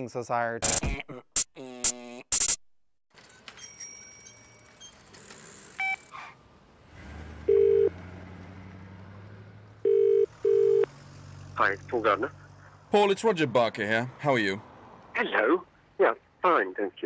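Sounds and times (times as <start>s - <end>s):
low hum of street traffic: 3.1s - 17.0s
telephone ringing tone: 7.5s - 7.9s, 9.8s - 10.9s.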